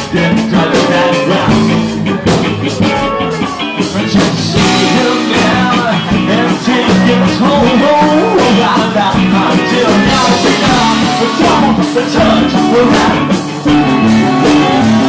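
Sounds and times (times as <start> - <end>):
live band playing: 0.0 - 15.0
person singing: 0.0 - 15.0.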